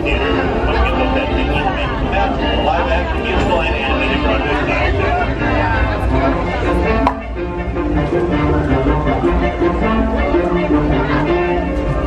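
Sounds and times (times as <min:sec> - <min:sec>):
steady low rumble: 0:00.0 - 0:10.8
background music: 0:00.0 - 0:12.0
crowd chatter: 0:00.0 - 0:12.0.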